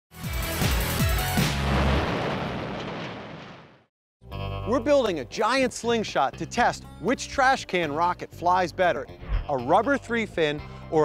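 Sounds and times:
explosion blast: 1.4s - 3.9s.

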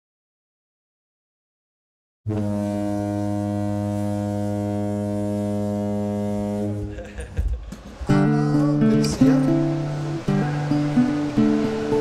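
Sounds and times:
low drone note: 2.3s - 7.0s, 8.1s - 12.0s.

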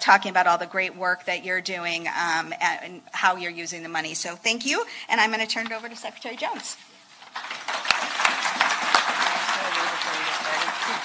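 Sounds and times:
audience applauding: 7.2s - 11.0s.

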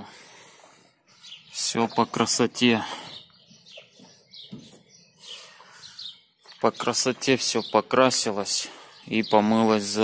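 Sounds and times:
bird chirps: 0.7s - 10.0s.

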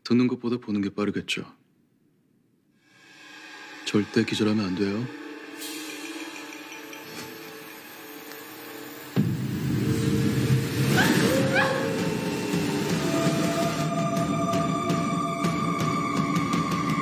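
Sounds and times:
dramatic soundtrack music: 2.8s - 17.0s.

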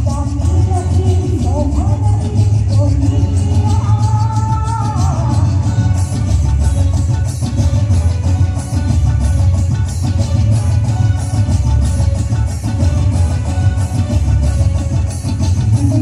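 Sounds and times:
bass-heavy music over pa system: 0.0s - 16.0s.

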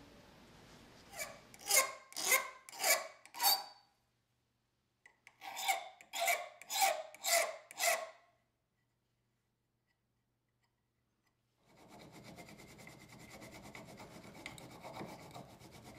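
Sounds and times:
file rasping on wood: 1.1s - 3.8s, 5.3s - 8.2s, 11.6s - 15.9s.

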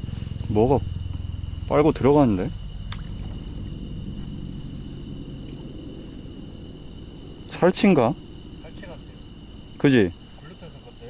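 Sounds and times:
crickets and insects trilling: 0.0s - 11.0s
low background rumble: 0.0s - 11.0s.

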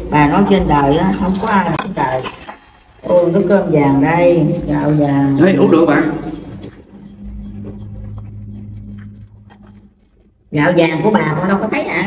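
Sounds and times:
low motor hum: 3.2s - 12.0s.

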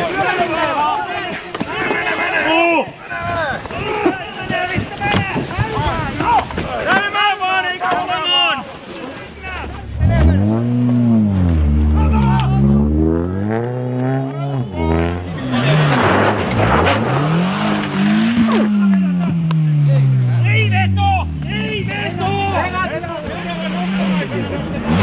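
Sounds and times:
voices: 0.0s - 25.0s
car sliding through snow: 9.3s - 21.1s
rally car engines revving: 9.4s - 25.0s.

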